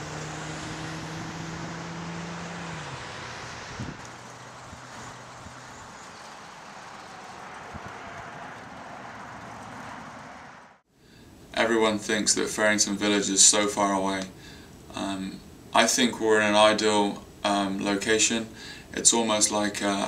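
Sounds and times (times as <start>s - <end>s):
tyre and road noise: 0.0s - 10.8s
vehicle engine hum passing: 0.0s - 10.8s.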